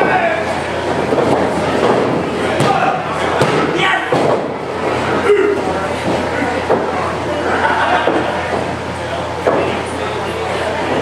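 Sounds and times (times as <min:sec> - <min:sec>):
crowd chatter and shouting: 0:00.0 - 0:11.0.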